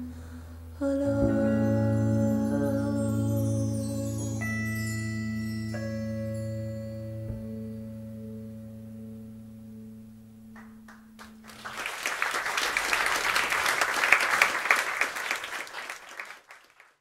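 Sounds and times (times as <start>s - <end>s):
audience applause: 10.9s - 17.0s.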